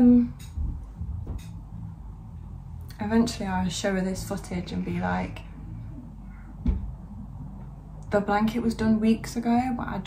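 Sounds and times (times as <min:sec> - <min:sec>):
low room noise: 0:00.0 - 0:10.0
dull knock: 0:06.6 - 0:07.0.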